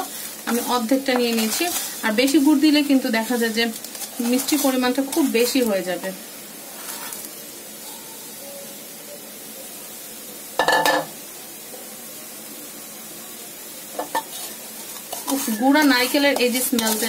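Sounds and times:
wooden spatula scraping plate: 0:00.0 - 0:02.4, 0:06.7 - 0:07.3, 0:14.0 - 0:17.0
steady low hiss: 0:00.0 - 0:17.0.

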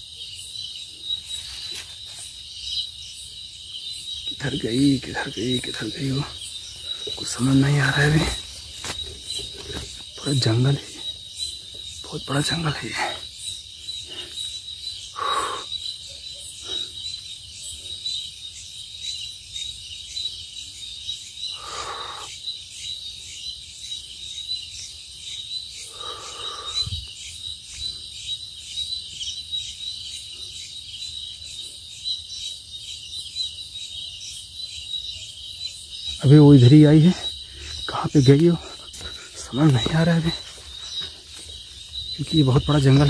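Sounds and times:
night insects chirring: 0:00.0 - 0:43.0.

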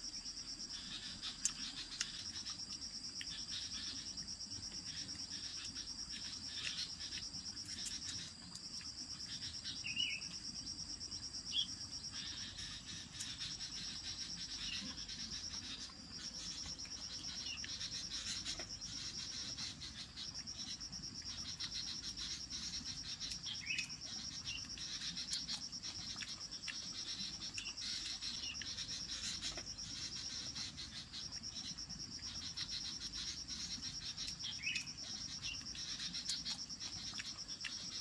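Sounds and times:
insects trilling: 0:00.0 - 0:38.0.

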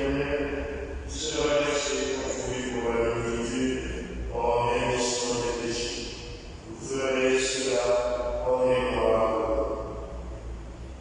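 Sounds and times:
slow liturgical chant: 0:00.0 - 0:11.0.

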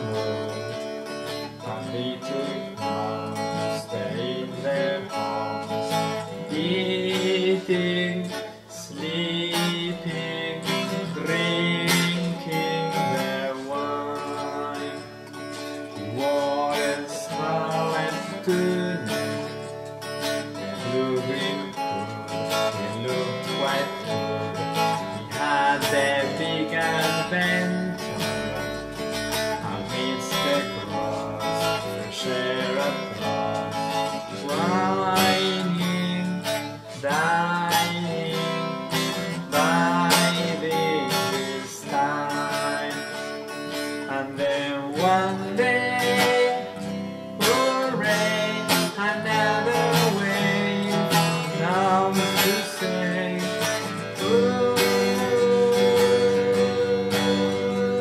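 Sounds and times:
band playing folk-rock: 0:00.0 - 0:58.0
strummed guitar: 0:00.0 - 0:58.0.

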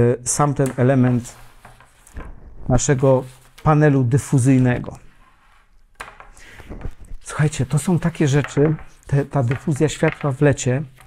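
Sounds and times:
fabric and frame handling: 0:00.6 - 0:11.0.

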